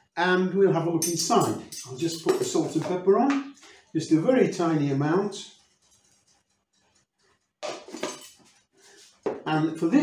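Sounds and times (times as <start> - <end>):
scratchy seasoning strokes: 4.6 - 9.3.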